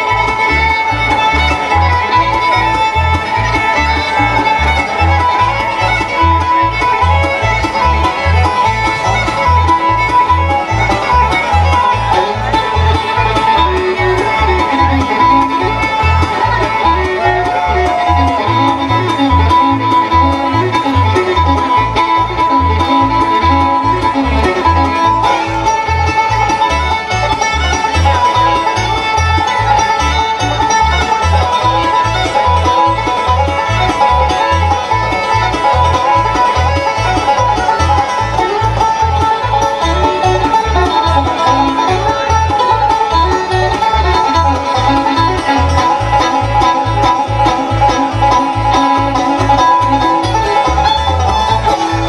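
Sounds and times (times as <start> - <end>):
acoustic guitar: 0.0 - 52.0
banjo: 0.0 - 52.0
fiddle: 0.0 - 52.0
mandolin: 0.0 - 52.0
upright bass: 0.0 - 52.0.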